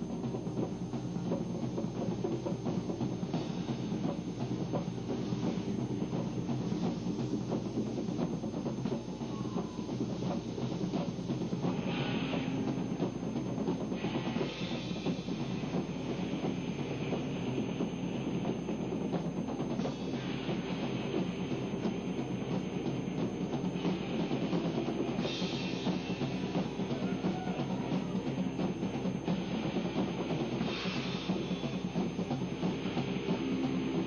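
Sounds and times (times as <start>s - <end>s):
band playing noise music: 0.0s - 34.0s.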